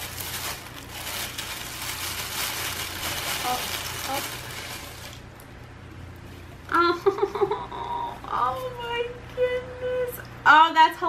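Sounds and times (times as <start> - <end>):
tissue paper rustling and crinkling: 0.0 - 5.2.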